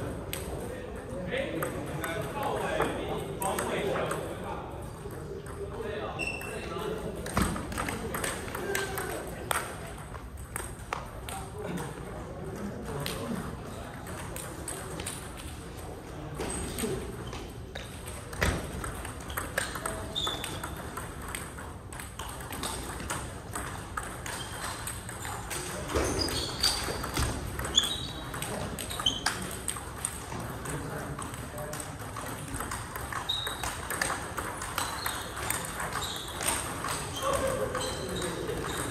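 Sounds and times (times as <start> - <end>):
table tennis balls clicking: 0.0 - 38.9.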